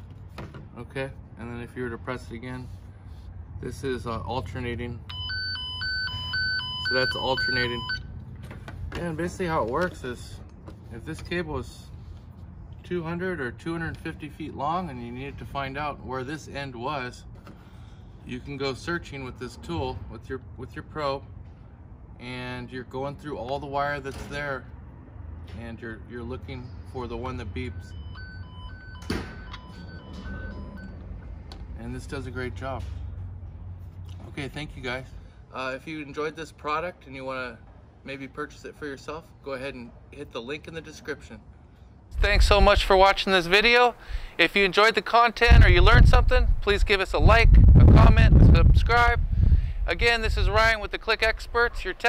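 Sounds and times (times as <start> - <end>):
alternating two-tone beep: 5.1 - 8.0.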